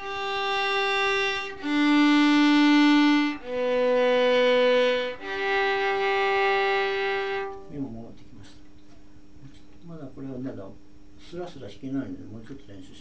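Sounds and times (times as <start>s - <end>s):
violin bowing slow notes: 0.0s - 7.9s.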